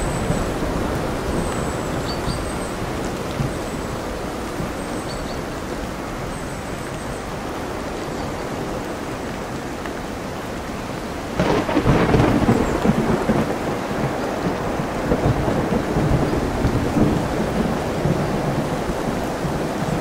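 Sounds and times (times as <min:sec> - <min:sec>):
steady rain: 0:00.0 - 0:20.0
storm waves: 0:00.0 - 0:20.0
loud thunder peal: 0:11.4 - 0:14.2.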